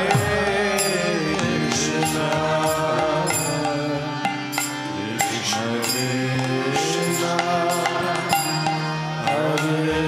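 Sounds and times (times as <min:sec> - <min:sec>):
harmonium: 0:00.0 - 0:10.0
man leading devotional chant: 0:00.0 - 0:10.0.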